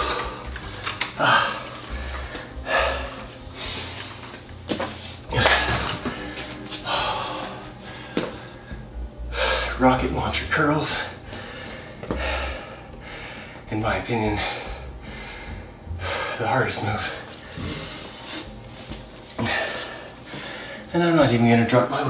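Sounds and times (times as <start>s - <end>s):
man breathing hard: 0.0s - 4.4s, 5.3s - 9.8s, 11.0s - 13.7s, 14.3s - 20.9s.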